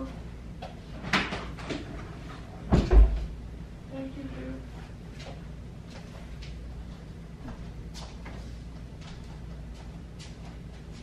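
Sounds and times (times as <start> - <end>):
door shutting thump: 2.7 - 3.3.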